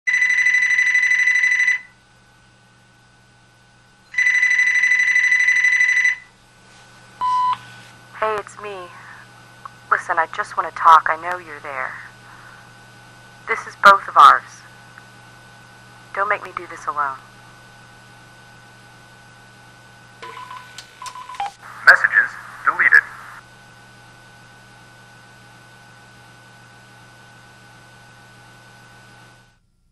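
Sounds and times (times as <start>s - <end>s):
electronic telephone ringing: 0.1s - 1.9s, 4.1s - 6.3s, 20.2s - 21.6s
telephone line hum: 0.1s - 29.9s
telephone line hiss: 4.1s - 6.3s, 7.2s - 10.6s, 20.2s - 23.4s.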